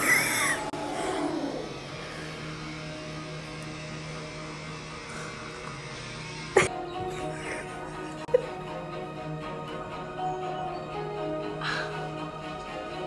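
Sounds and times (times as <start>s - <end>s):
person crying out: 0.0s - 1.6s.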